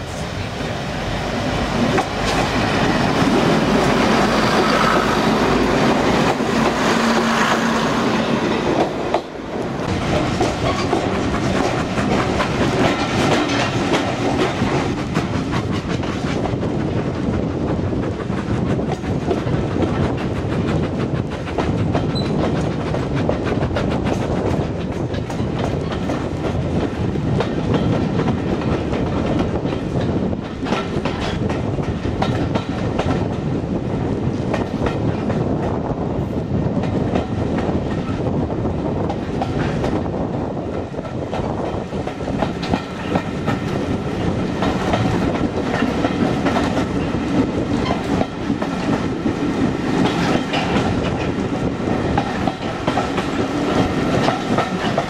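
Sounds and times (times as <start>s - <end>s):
train carriage rumble: 0.0s - 55.0s
wheels clicking over rail joints: 8.2s - 33.4s, 40.8s - 55.0s.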